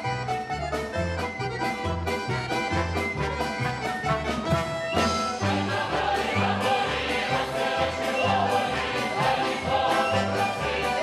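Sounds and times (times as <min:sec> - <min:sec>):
accordions: 0:00.0 - 0:11.0
choir singing folk song: 0:05.0 - 0:11.0.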